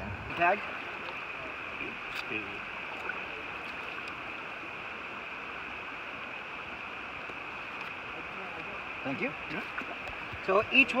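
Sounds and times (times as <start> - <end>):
river rushing over riffles: 0.0 - 11.0.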